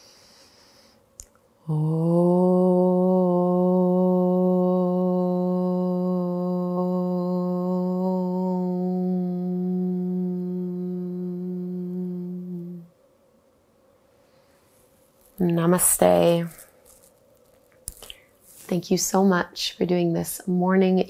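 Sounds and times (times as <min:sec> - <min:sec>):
woman chanting om: 0:01.6 - 0:13.0, 0:15.4 - 0:16.8.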